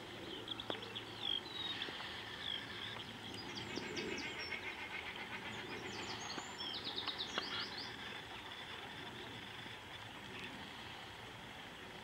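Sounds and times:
small birds calling: 0:00.0 - 0:12.0
steady outdoor hiss: 0:00.0 - 0:12.0.

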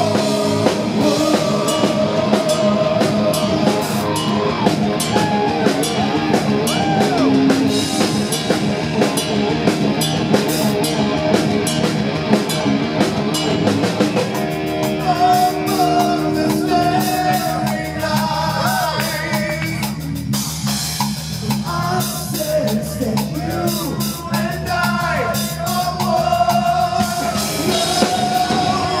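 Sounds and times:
bass guitar: 0:00.0 - 0:29.0
distorted electric guitars: 0:00.0 - 0:29.0
drum kit with cymbal hits: 0:00.0 - 0:29.0.

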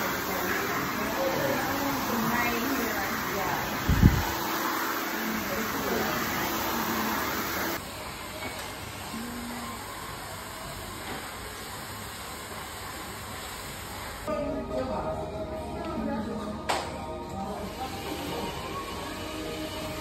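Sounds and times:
music: 0:14.3 - 0:20.0.

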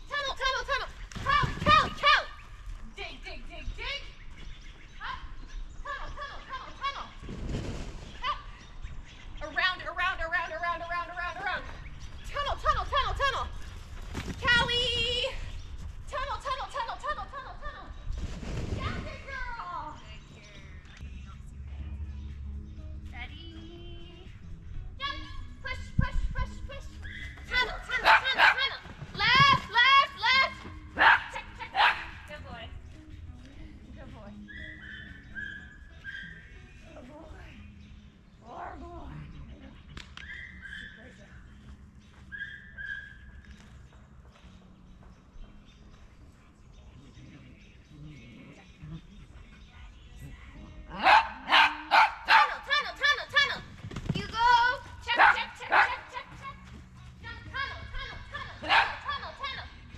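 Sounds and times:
small dog barking: 0:28.0 - 0:28.6, 0:31.0 - 0:32.2, 0:50.9 - 0:52.6, 0:58.6 - 0:59.1.

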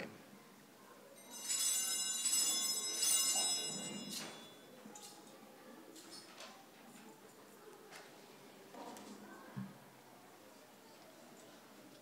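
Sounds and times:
small bells jingling: 0:01.2 - 0:05.1.

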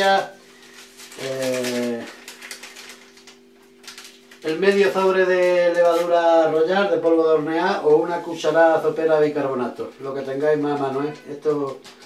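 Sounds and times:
paper sachet crackling open: 0:00.0 - 0:12.0
steady low hum: 0:00.0 - 0:12.0.

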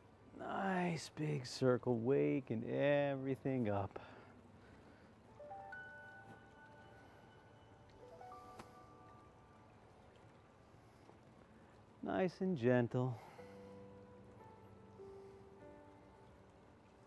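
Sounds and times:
soft bell-like background music: 0:05.3 - 0:10.8, 0:13.1 - 0:17.0.

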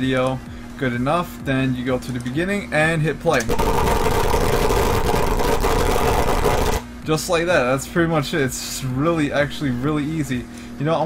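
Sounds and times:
harsh distorted droning noise: 0:00.3 - 0:11.0.

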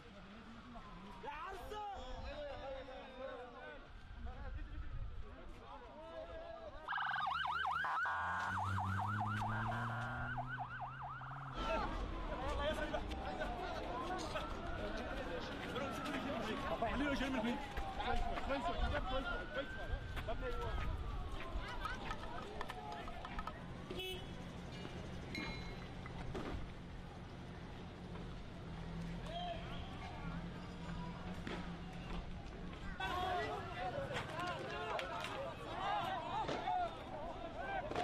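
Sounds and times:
street commotion: 0:00.0 - 0:38.0
ambulance siren wailing and yelping: 0:06.9 - 0:22.2.

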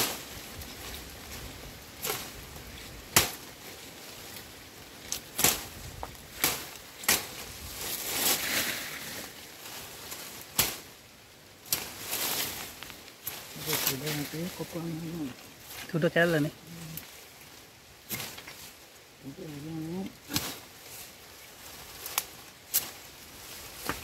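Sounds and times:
knife chopping woody stems: 0:03.1 - 0:03.4.

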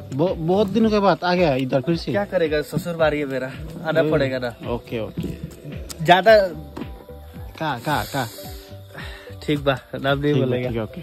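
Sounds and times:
man talking: 0:00.0 - 0:08.6, 0:09.3 - 0:11.0
background music: 0:00.0 - 0:11.0
high hiss: 0:03.2 - 0:11.0.

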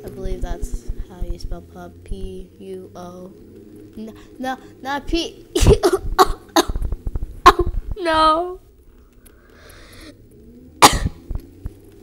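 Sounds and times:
person coughing: 0:05.6 - 0:06.8, 0:07.5 - 0:07.7, 0:10.8 - 0:11.2
faint clicks: 0:08.7 - 0:10.4.

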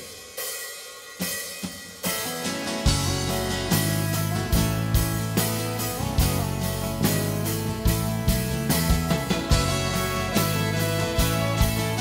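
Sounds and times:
cymbals and hi-hat struck: 0:00.0 - 0:12.0.

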